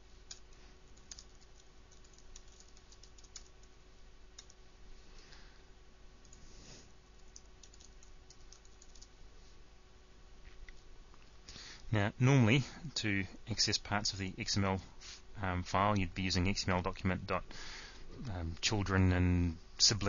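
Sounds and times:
low steady hum: 0.0s - 20.0s
typing on computer keyboard: 1.0s - 3.7s, 4.4s - 4.6s, 7.2s - 9.1s.

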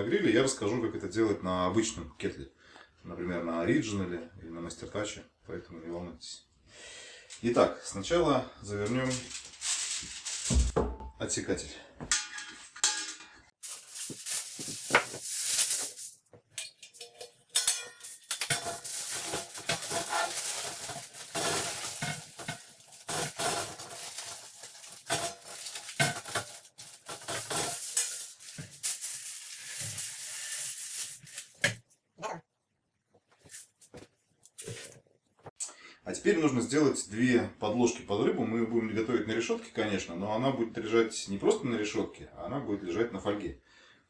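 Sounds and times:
aluminium foil crinkling: 8.7s - 10.8s, 13.6s - 31.7s, 33.4s - 34.9s.

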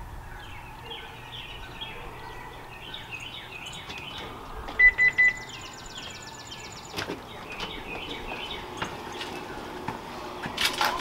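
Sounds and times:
birds chirping: 0.0s - 11.0s
electronic beeps: 4.8s - 5.8s.

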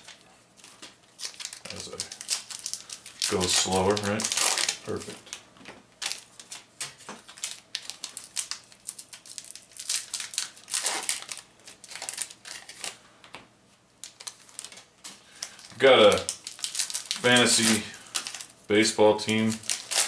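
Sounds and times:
wrappers torn open and crinkled: 1.2s - 5.4s, 6.0s - 13.0s, 14.0s - 18.6s, 19.2s - 20.0s.

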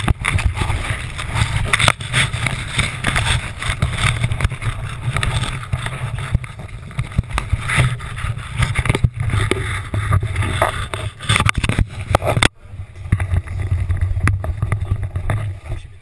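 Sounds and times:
wind buffeting microphone: 0.0s - 15.9s
fabric and lines rustling: 0.0s - 16.0s.

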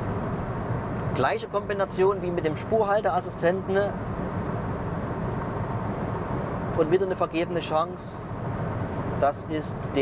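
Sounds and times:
road and wind noise in car cabin: 0.0s - 10.0s.

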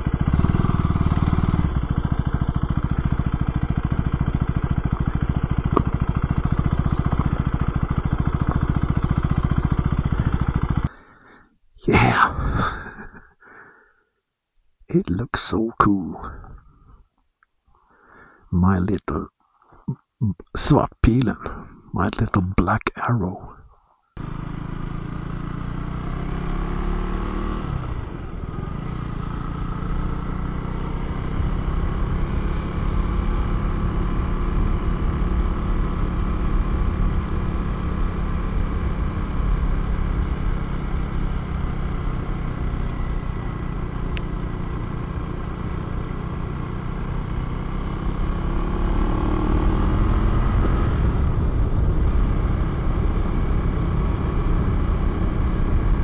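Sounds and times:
motorcycle engine running: 0.0s - 13.1s, 24.2s - 56.0s.

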